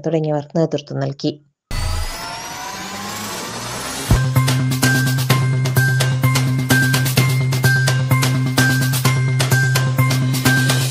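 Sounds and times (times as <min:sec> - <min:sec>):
rising tones over noise rush: 0:01.7 - 0:05.2.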